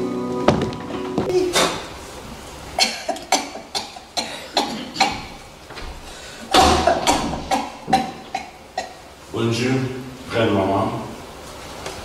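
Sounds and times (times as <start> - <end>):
footsteps on wooden stage floor: 0.4 - 1.9.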